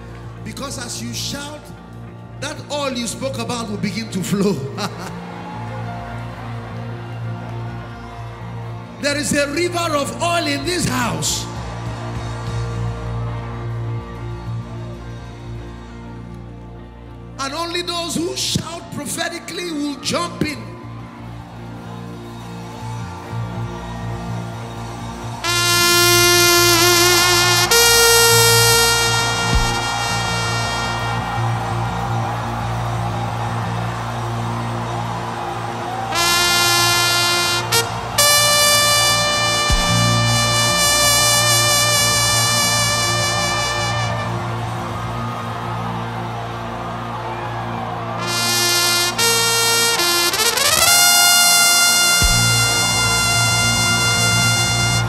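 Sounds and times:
trumpet calls: 25.4s - 32.6s, 36.1s - 44.9s, 48.2s - 55.0s.

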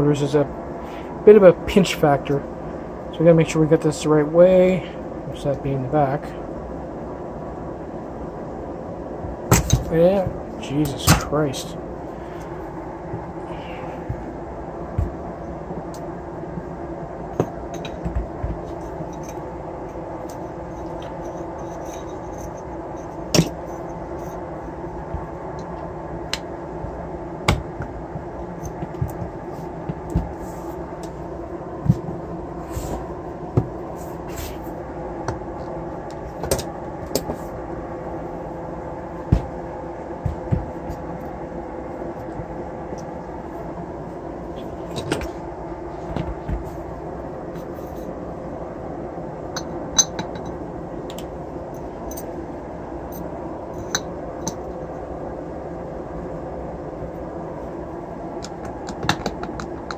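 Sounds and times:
steady background hum: 0.0s - 59.9s.

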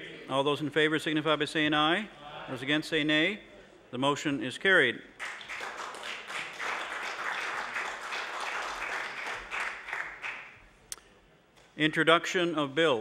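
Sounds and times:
many hands clapping: 5.2s - 10.7s.

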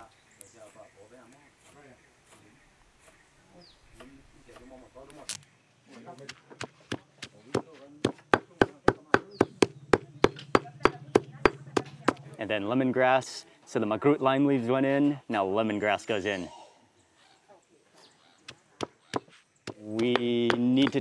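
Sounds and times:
stone pestle pounding in mortar: 6.6s - 12.2s, 19.2s - 21.0s.

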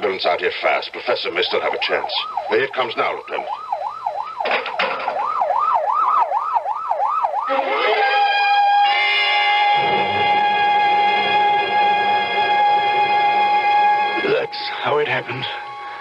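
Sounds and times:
ambulance siren wailing: 1.2s - 16.0s
sustained music chord: 7.6s - 16.0s.

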